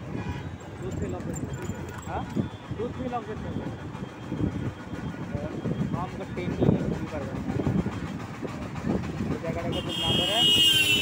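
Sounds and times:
vehicle road noise: 0:00.0 - 0:11.0.

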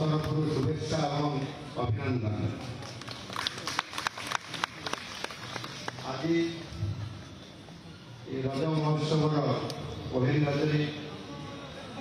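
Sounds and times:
audience clapping: 0:02.7 - 0:06.1.

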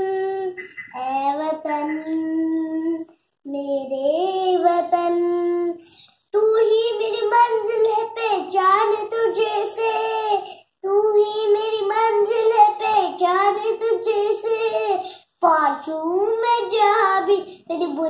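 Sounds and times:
girl singing unaccompanied: 0:00.0 - 0:18.0.

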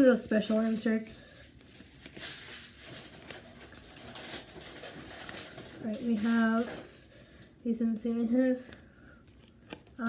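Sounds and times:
cards rustling and flicking: 0:00.3 - 0:07.0, 0:08.6 - 0:10.0.

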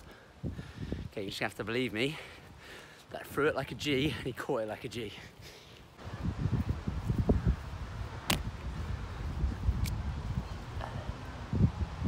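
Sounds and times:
wind buffeting microphone: 0:00.4 - 0:01.2, 0:06.0 - 0:12.0.

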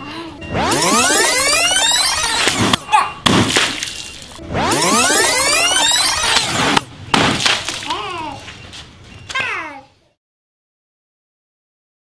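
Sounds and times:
water balloon bursting: 0:02.2 - 0:08.3.

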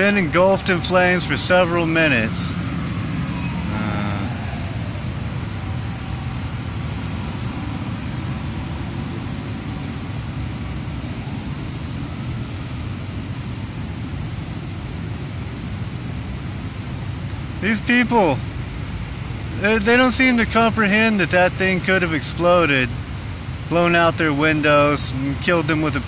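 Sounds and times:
cars driving past: 0:00.0 - 0:26.0
brief high tone: 0:02.8 - 0:07.6.

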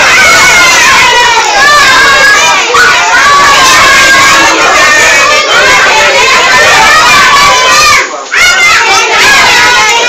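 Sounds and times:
children shouting: 0:00.0 - 0:10.0.

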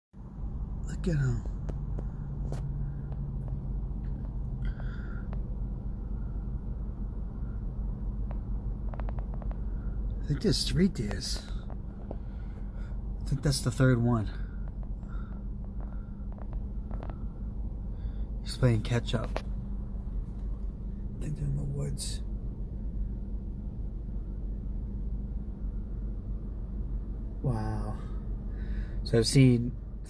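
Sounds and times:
car engine idling: 0:00.2 - 0:30.0.

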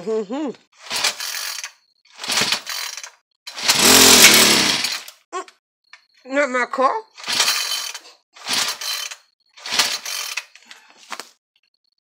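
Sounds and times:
recoil starter cord pulls: 0:00.9 - 0:05.1.

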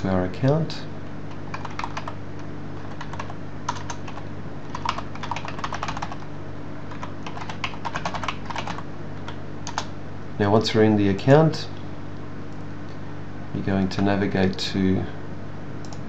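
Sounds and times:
steady low hum: 0:00.0 - 0:16.0
typing on computer keyboard: 0:01.3 - 0:02.2, 0:02.8 - 0:06.2, 0:06.9 - 0:08.8, 0:09.7 - 0:09.9.

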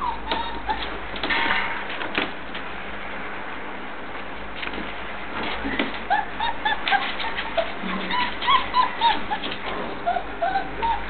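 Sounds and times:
puppy whining: 0:00.0 - 0:01.2, 0:05.7 - 0:11.0.

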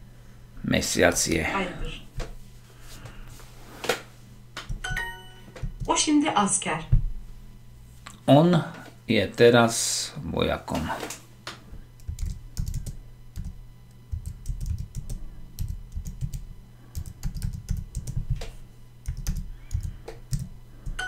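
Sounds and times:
typing on computer keyboard: 0:12.0 - 0:21.0.

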